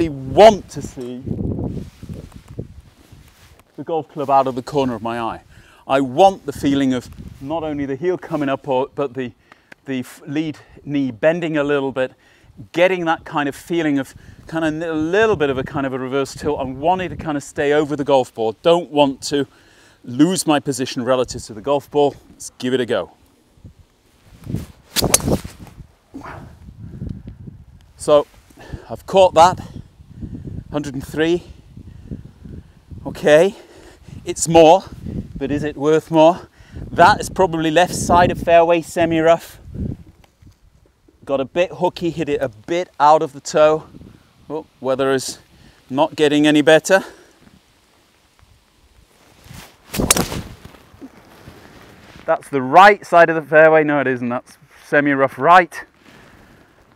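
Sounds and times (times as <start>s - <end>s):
golf club swing whoosh: 24.4s - 26.3s, 49.9s - 50.6s
crack of club hitting ball: 24.9s - 25.5s, 49.9s - 50.5s
golf club striking ball: 25.0s - 25.4s.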